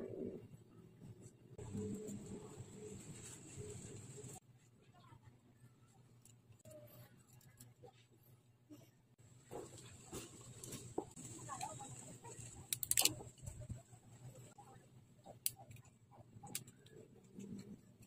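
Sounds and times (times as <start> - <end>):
plastic parts clicking and snapping: 12.4 - 13.6.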